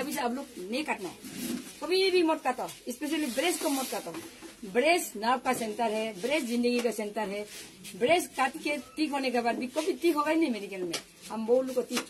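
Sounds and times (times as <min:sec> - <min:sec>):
woman talking: 0:00.0 - 0:01.2, 0:01.8 - 0:12.0.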